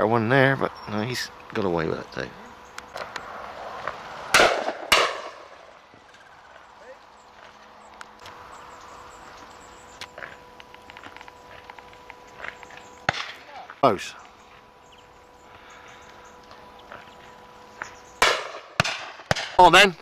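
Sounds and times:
distant shotgun reports: 0.0s - 20.0s
faint steady hum: 0.0s - 20.0s.

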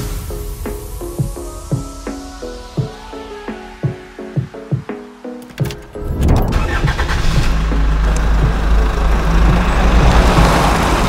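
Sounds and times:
music: 0.0s - 11.0s
car engine rumbling: 5.4s - 11.0s.

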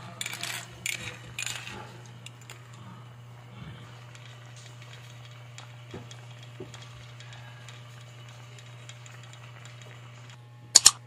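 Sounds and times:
steady low hum: 0.0s - 11.0s
pot boiling and bubbling: 1.4s - 10.4s.

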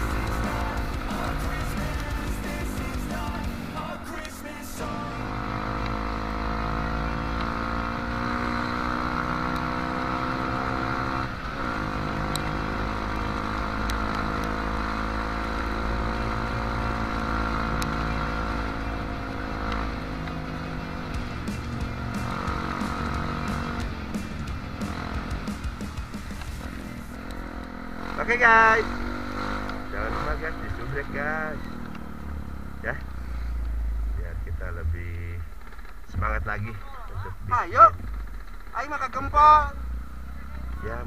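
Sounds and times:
motorcycle engine revving: 0.0s - 41.0s.

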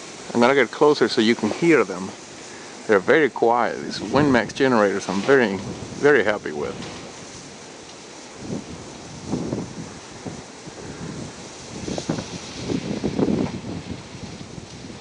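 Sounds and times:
wind buffeting microphone: 0.0s - 15.0s
wind turbines whooshing: 0.0s - 15.0s.

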